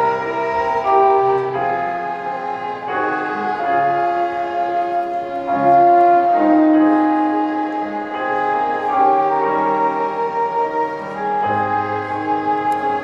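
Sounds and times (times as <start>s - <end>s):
violin ensemble with piano: 0.0s - 13.0s.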